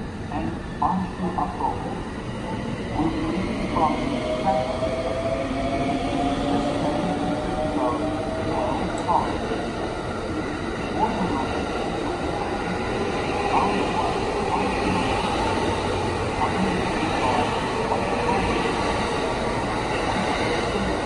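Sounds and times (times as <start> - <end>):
train wheels on rails: 0.0 - 21.0.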